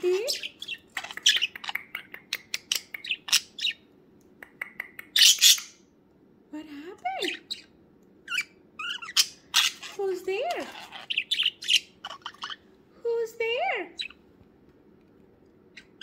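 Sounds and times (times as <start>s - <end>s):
budgerigar chirping and chattering: 0.0s - 3.9s, 4.5s - 5.8s, 7.2s - 12.7s, 13.9s - 14.2s, 15.7s - 16.0s.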